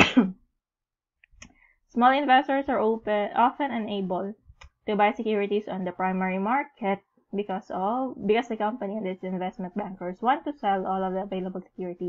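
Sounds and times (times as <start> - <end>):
woman coughing: 0.0 - 0.4.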